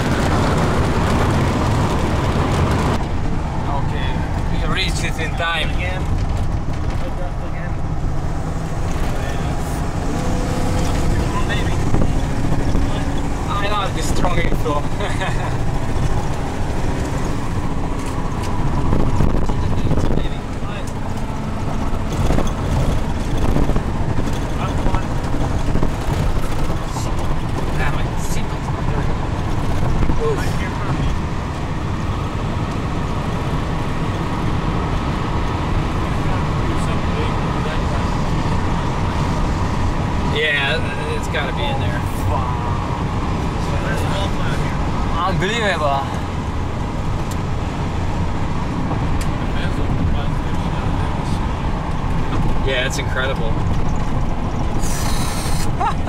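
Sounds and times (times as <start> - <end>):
car tyres and engine rumble: 0.0 - 56.0.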